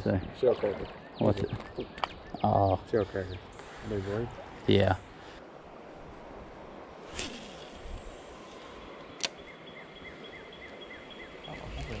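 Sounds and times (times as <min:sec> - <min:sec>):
creek hiss: 0:02.6 - 0:12.0
fishing line hissing off spool: 0:07.0 - 0:08.8.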